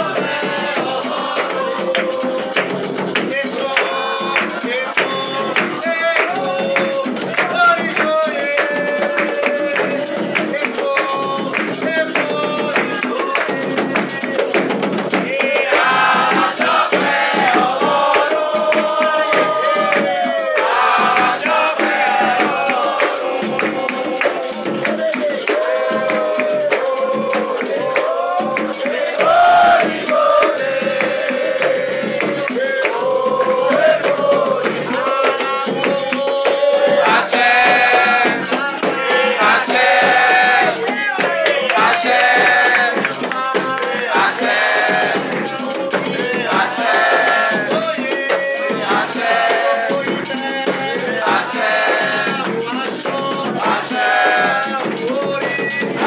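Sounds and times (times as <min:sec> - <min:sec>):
group of voices chanting: 0:00.0 - 0:02.8, 0:15.2 - 0:56.0
hand drums beating rhythm: 0:00.0 - 0:56.0.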